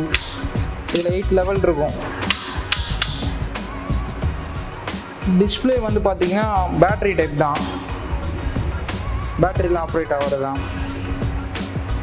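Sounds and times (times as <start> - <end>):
resistance knob clicking: 2.0 - 3.4.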